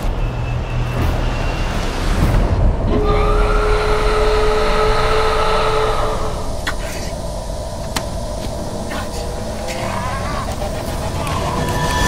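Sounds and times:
eerie held tone: 2.9s - 12.0s.

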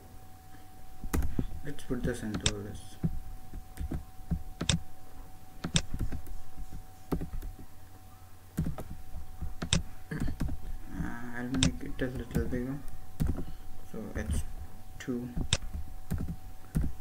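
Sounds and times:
faint steady hum: 0.0s - 17.0s
computer keys clicking: 1.0s - 4.8s, 5.6s - 7.7s, 8.6s - 13.6s, 15.4s - 17.0s.

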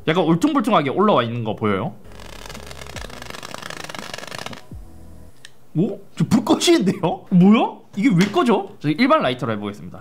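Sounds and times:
capsules crackling rapidly: 2.1s - 4.7s
torch lighter flame: 2.1s - 4.7s.

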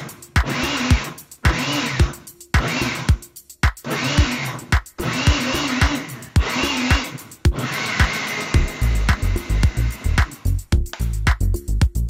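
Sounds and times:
blender motor whining: 0.0s - 3.2s, 3.8s - 10.5s
music with steady beat: 0.0s - 12.0s.

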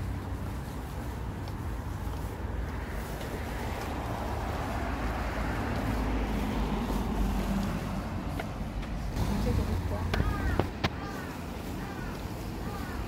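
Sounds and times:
low rumble of traffic: 0.0s - 13.0s
vehicle engine hum: 0.0s - 13.0s.

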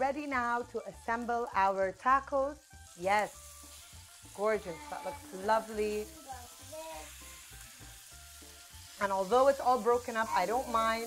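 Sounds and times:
fish sizzling in grill pan: 0.0s - 11.0s.

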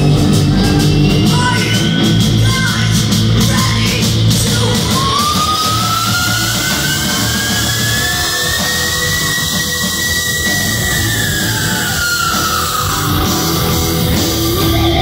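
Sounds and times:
heavy metal band playing: 0.0s - 15.0s.

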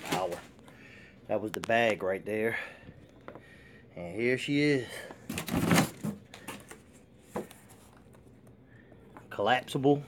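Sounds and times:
cardboard packaging rustle: 0.0s - 0.6s.

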